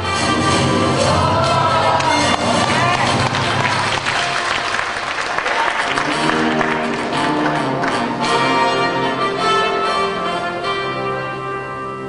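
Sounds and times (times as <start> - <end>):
backing music: 0.0 - 12.0
audience applauding: 1.0 - 8.2.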